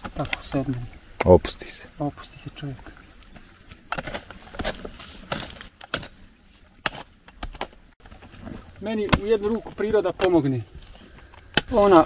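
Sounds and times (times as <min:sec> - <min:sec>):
rock clattering: 0:02.6 - 0:12.0
hand pick striking rock: 0:03.9 - 0:06.2, 0:11.4 - 0:11.9.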